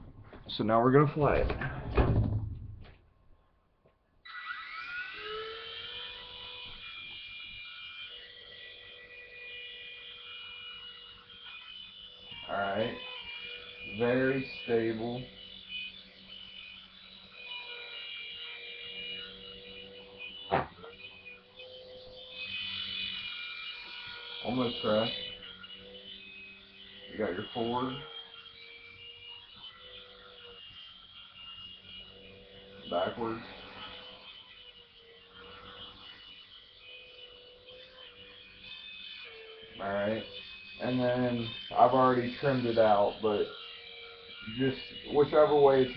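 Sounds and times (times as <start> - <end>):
toy helicopter whirring: 4.2 - 45.9.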